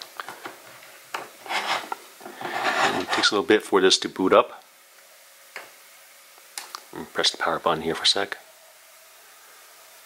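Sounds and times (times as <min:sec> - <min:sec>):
rubbing rustle: 0:01.4 - 0:03.3.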